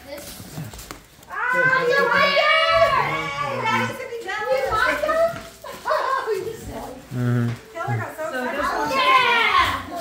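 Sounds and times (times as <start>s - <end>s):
background chatter: 0.0s - 10.0s
child's excited high-pitched voice: 8.7s - 10.0s.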